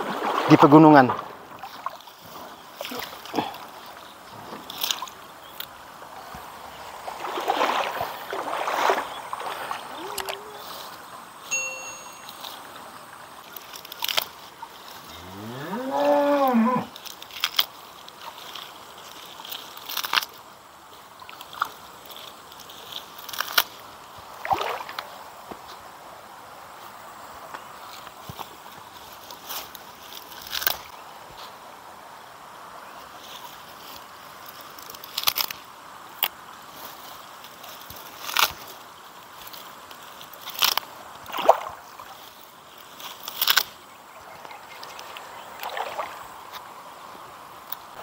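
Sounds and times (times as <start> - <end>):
water splashing: 0.0 - 15.0, 16.8 - 25.5, 39.4 - 46.9
rustling of watercress: 0.0 - 48.0
cow mooing: 15.1 - 16.9.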